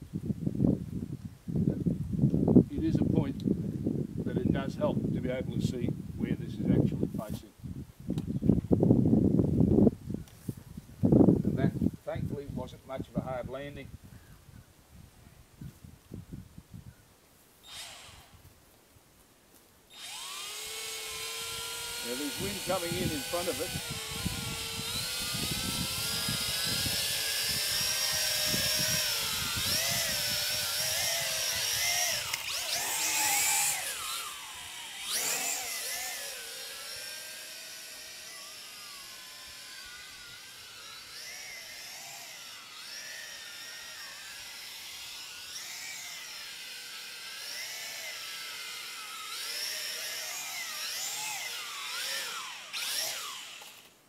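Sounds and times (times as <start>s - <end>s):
wind rumbling on microphone: 0.0s - 17.1s, 21.5s - 35.2s
toy drone motors whining: 17.6s - 18.5s, 19.9s - 54.0s.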